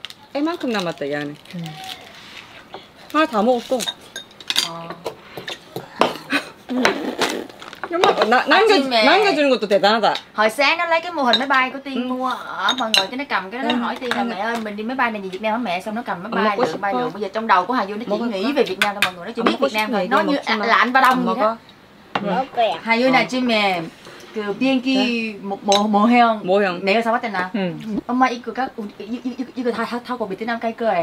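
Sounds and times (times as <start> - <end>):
utensils clinking against dishes: 3.5 - 6.2
woman talking: 10.4 - 21.6, 22.2 - 31.0.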